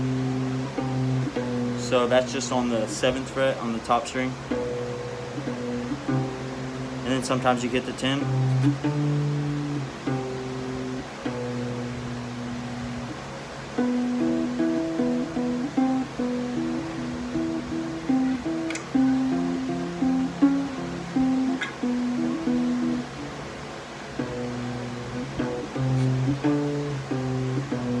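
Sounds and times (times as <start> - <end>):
acoustic guitar picking low notes: 0.0 - 28.0
guitar string clicks: 8.2 - 11.8, 18.0 - 19.2, 21.2 - 22.7, 24.2 - 28.0.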